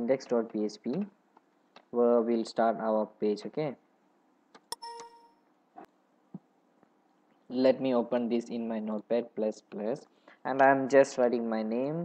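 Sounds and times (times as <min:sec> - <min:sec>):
computer alert chime: 0:04.7 - 0:05.4.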